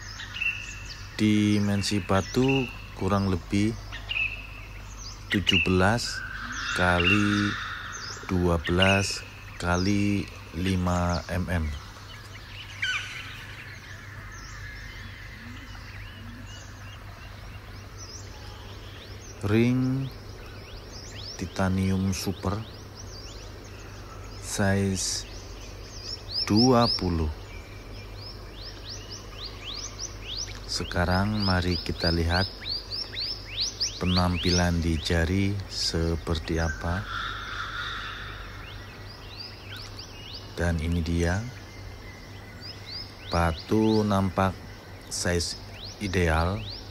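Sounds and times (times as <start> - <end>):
high insect drone: 0.0 - 46.9
low outdoor hum: 0.0 - 46.9
small birds chirping: 0.0 - 46.9.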